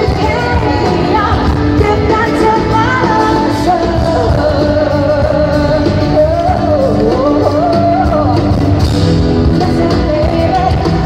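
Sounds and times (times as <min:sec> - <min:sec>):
live pop band playing: 0:00.0 - 0:11.0
woman singing amplified: 0:00.0 - 0:11.0.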